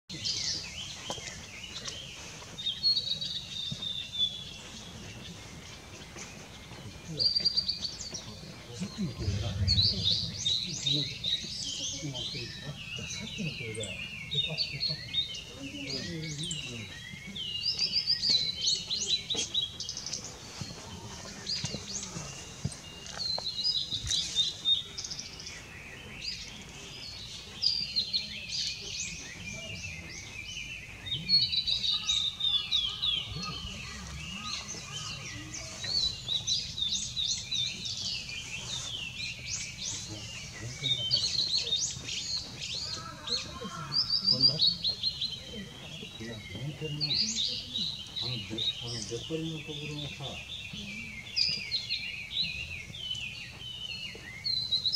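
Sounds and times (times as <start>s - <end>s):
bird singing warbled phrases: 0.1s - 54.9s
faint low background rumble: 9.1s - 11.0s.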